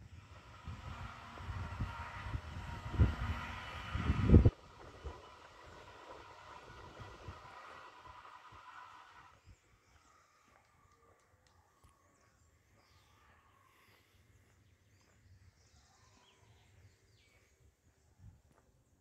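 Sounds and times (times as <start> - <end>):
vehicle low rumble: 0.0 - 17.5
steady city hum: 0.0 - 19.0.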